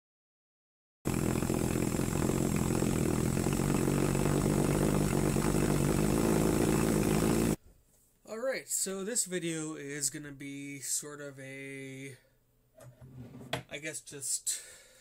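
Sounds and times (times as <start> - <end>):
pulsejet buzzing: 1.1 - 7.6.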